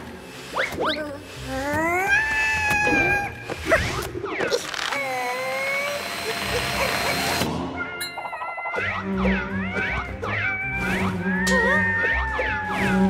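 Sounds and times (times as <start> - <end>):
cartoon squealing cries: 1.6 - 3.4, 9.5 - 13.0
background music: 6.4 - 13.0.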